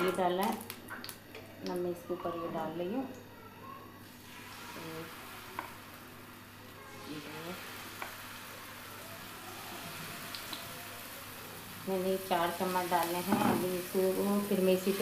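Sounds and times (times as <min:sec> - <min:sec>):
sizzling hiss from hot griddle: 0:04.0 - 0:15.0.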